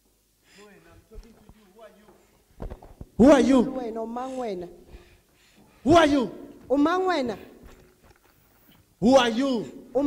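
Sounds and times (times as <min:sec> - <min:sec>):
small clicks and rustles: 0:07.6 - 0:09.0.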